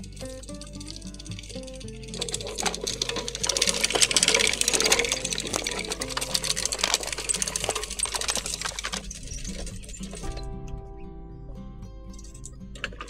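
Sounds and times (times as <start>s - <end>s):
push seeder clicking rattle: 0.0s - 10.4s.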